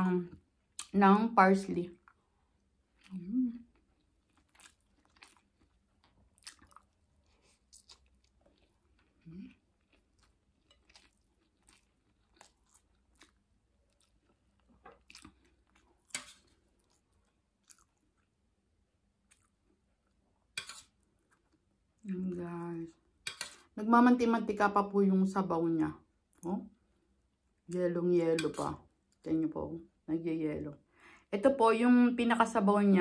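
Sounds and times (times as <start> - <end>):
chewing: 2.9 - 18.3, 19.2 - 21.6.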